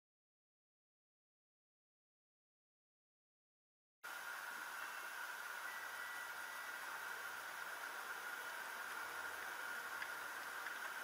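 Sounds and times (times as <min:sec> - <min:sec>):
steady hiss: 0:04.0 - 0:11.0
faint car cabin noise: 0:04.1 - 0:11.0
high-pitched whine: 0:04.1 - 0:11.0.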